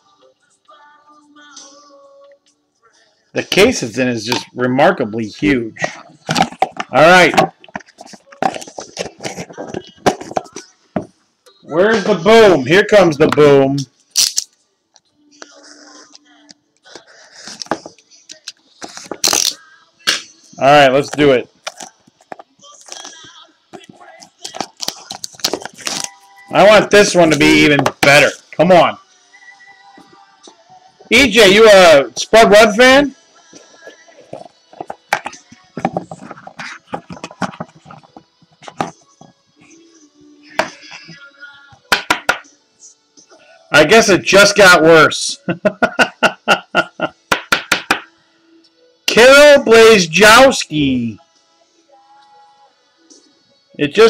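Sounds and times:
faint background music: 0:00.0 - 0:54.0
trading cards being handled: 0:05.8 - 0:10.7, 0:17.0 - 0:19.6, 0:20.9 - 0:28.4, 0:33.6 - 0:39.4.

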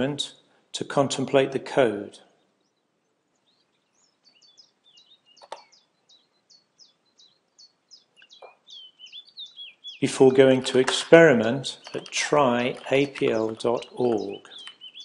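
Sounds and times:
high bird chirps: 0:02.3 - 0:15.0
sharp click: 0:05.4 - 0:05.7.

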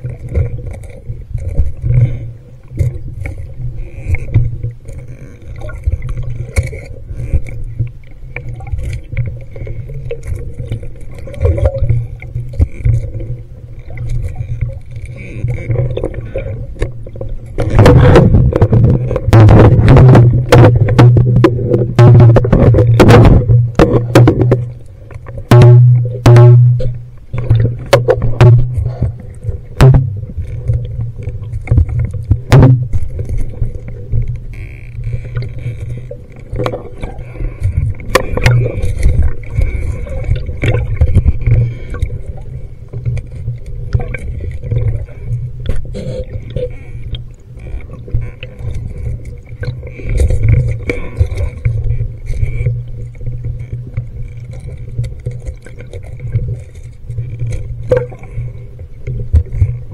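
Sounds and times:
muffled underwater rumble: 0:00.0 - 0:59.9
housing knocking against scuba gear: 0:17.6 - 0:24.8, 0:29.8 - 0:30.3.

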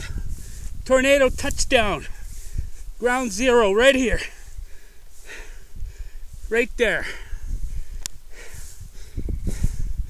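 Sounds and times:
rustling through tall grass: 0:00.0 - 0:10.0
wind buffeting microphone: 0:00.0 - 0:10.0.

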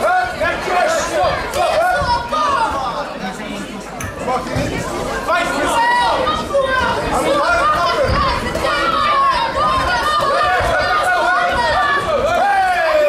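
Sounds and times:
spectators shouting and chattering: 0:00.0 - 0:13.0.

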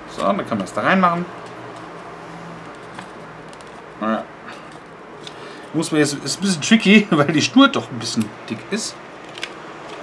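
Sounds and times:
paper card and envelope handling: 0:02.7 - 0:03.8.

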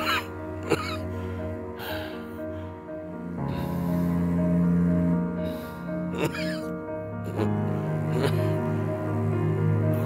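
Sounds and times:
background music with held notes: 0:00.0 - 0:10.0.

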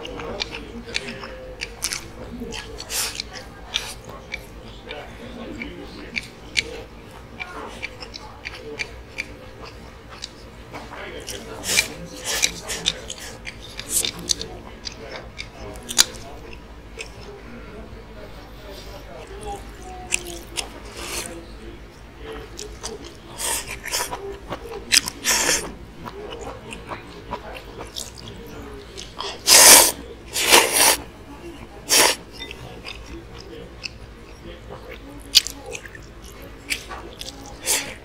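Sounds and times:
raspy eating sounds: 0:00.0 - 0:38.0
man slurping noodles: 0:29.4 - 0:31.0.

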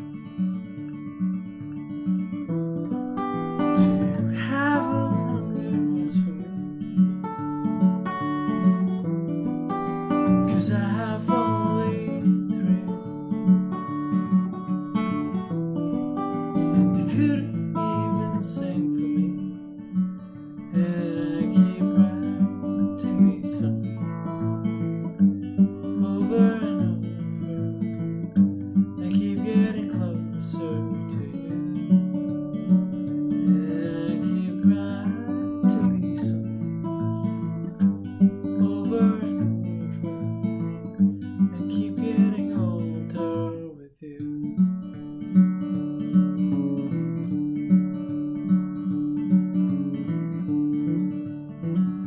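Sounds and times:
fingerpicked acoustic guitar: 0:00.0 - 0:52.0.

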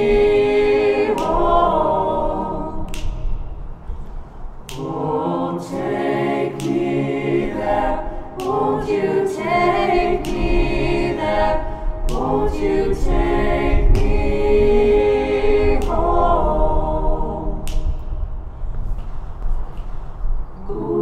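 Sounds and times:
a cappella choir singing: 0:00.0 - 0:03.7, 0:04.6 - 0:18.4, 0:20.5 - 0:21.0.

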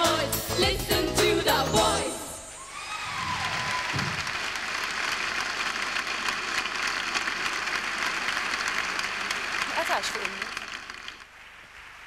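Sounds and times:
audience applauding: 0:02.8 - 0:12.0.

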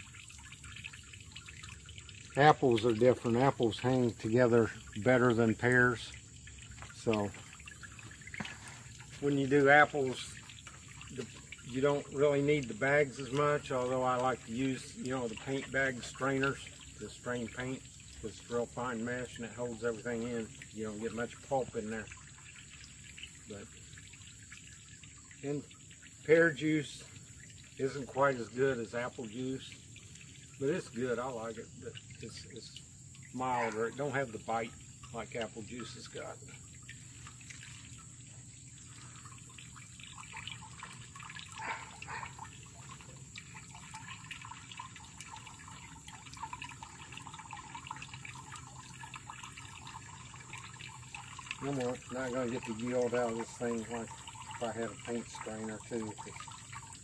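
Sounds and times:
juice trickling: 0:00.0 - 0:57.0.

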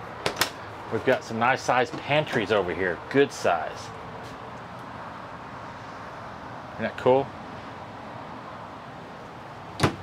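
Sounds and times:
steady background noise: 0:00.0 - 0:10.0
wooden cabinet door shutting: 0:09.8 - 0:10.0.

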